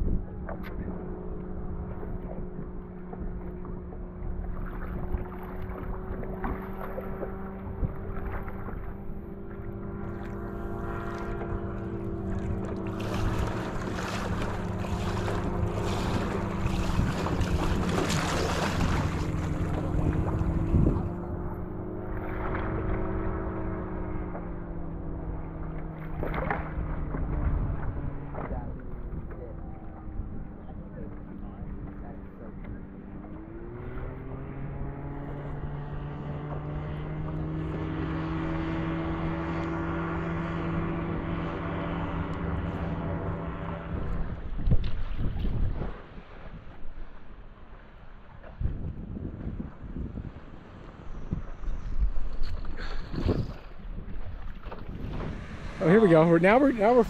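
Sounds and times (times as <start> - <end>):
propeller engine drone: 0.0 - 57.0
water noise: 0.0 - 57.0
wind: 0.0 - 57.0.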